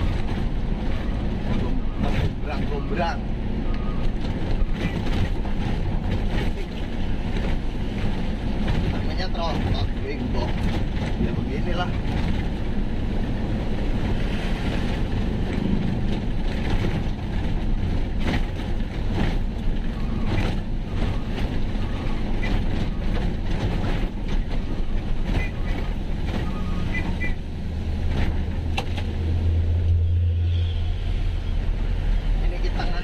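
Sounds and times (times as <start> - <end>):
road noise: 0.0 - 33.0
cab rattles and clicks: 3.7 - 27.4, 28.0 - 29.2
truck diesel engine running: 11.9 - 30.4.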